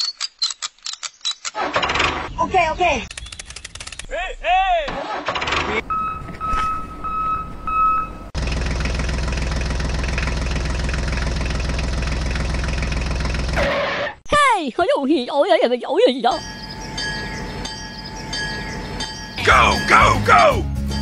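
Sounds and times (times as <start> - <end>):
short beeps: 5.9 - 8.3.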